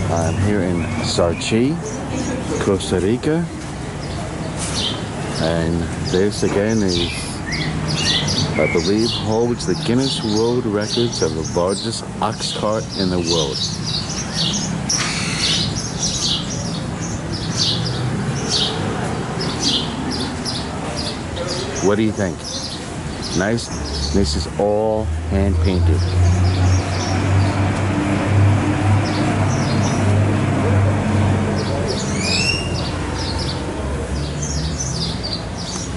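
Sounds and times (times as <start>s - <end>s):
birds chirping: 0.0s - 35.9s
rising whistled bird calls: 32.1s - 33.0s.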